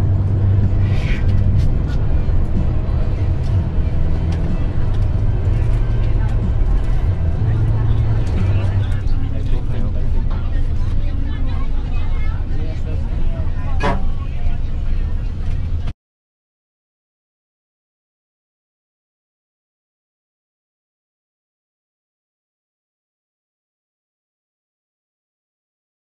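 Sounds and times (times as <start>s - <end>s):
faint voices talking: 0.0s - 15.9s
bus engine and road rumble: 0.0s - 16.0s.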